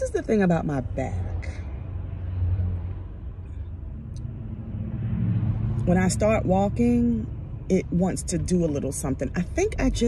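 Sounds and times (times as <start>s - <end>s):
car engine and road rumble: 0.0s - 10.0s.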